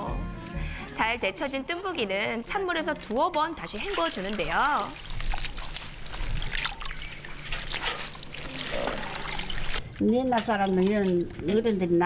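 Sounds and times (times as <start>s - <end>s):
water splashing and dripping: 1.9s - 12.0s.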